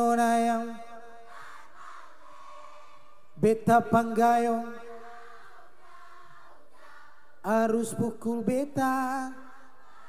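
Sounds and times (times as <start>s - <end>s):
audience singing along: 1.2s - 3.4s, 4.8s - 7.6s, 9.5s - 10.0s.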